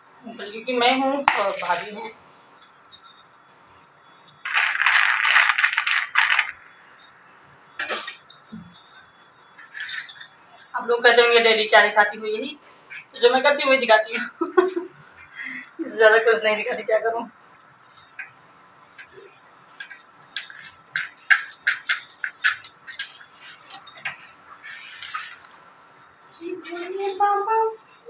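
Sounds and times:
glass bangles jangling: 2.6s - 10.8s, 14.1s - 28.0s.

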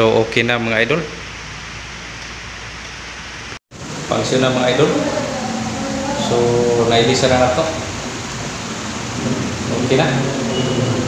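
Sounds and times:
fan blades rushing air: 0.0s - 11.0s
low motor hum: 3.8s - 11.0s.

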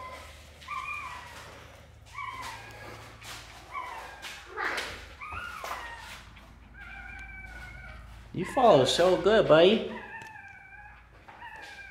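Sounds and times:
rustling: 0.0s - 9.3s
puppy whimpering: 0.0s - 11.9s.

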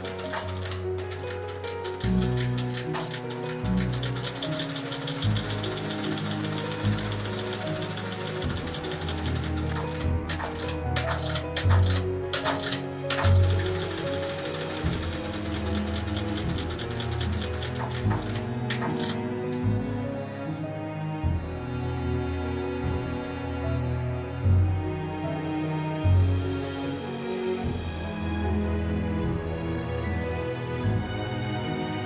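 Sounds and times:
sewing machine stitching leather: 0.0s - 19.6s
background music: 0.0s - 32.0s.

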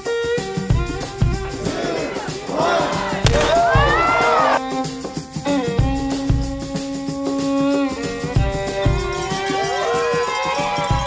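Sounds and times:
background music: 0.0s - 11.0s
crowd cheering and whooping: 1.5s - 4.6s, 9.0s - 11.0s
shotgun blast: 3.2s - 4.1s.

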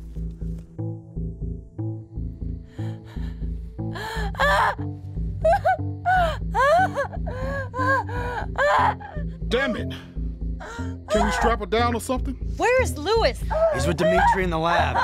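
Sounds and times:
tense film score: 0.0s - 15.0s
woman gasping: 2.7s - 4.8s
woman crying out in pain: 5.4s - 9.3s, 13.5s - 15.0s.

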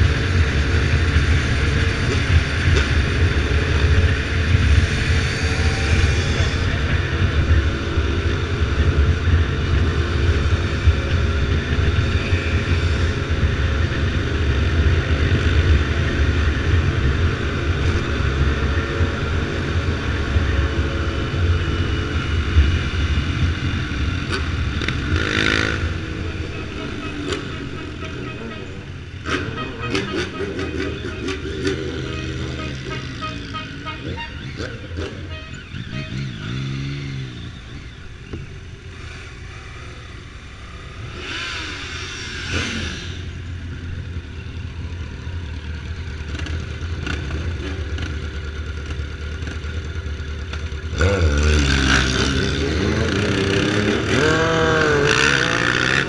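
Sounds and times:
engines revving: 0.0s - 56.0s
motorcycle engine running: 0.0s - 56.0s.

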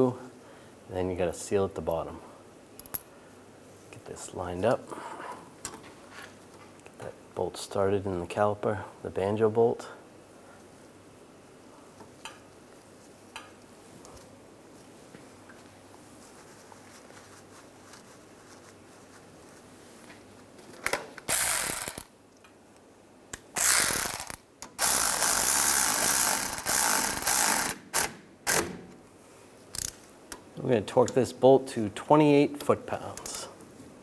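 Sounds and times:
cordless electric ratchet running: 23.6s - 27.8s.

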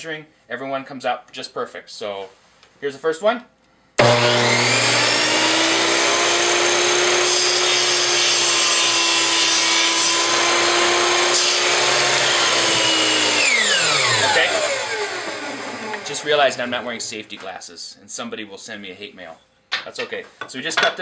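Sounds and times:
miter saw cutting wood: 4.0s - 17.1s.

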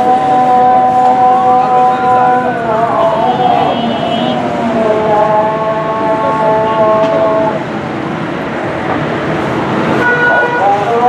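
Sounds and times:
vehicle horn blasts: 0.0s - 4.5s, 10.0s - 11.0s
busy road traffic: 0.0s - 11.0s.

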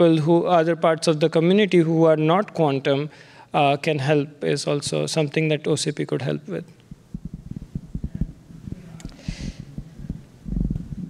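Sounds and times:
microphone handling thumps: 6.9s - 11.0s
short hiss: 9.1s - 9.7s.

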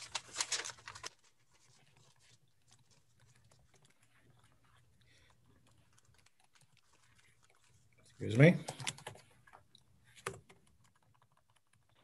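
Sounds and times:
faint computer keyboard typing: 2.2s - 7.8s, 8.5s - 12.0s.

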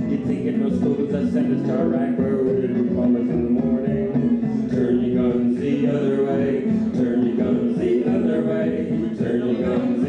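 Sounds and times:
looped guitar folk tune: 0.0s - 10.0s.

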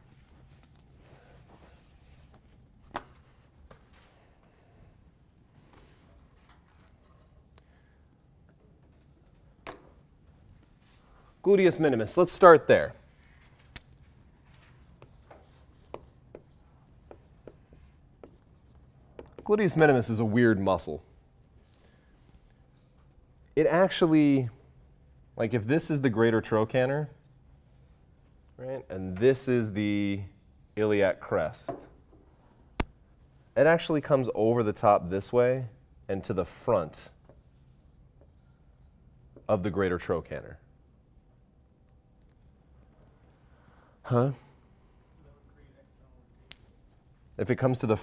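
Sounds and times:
marker writing on a whiteboard: 0.0s - 3.8s, 13.0s - 20.1s, 29.0s - 32.0s, 36.6s - 39.8s.

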